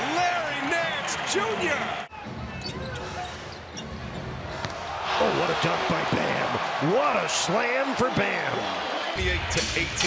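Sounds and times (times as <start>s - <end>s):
crowd noise: 0.0s - 10.0s
sneaker squeaks: 2.5s - 4.3s.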